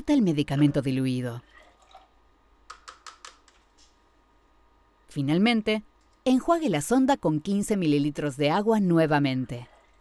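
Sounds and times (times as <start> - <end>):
liquid poured into syringe: 1.5 - 2.2.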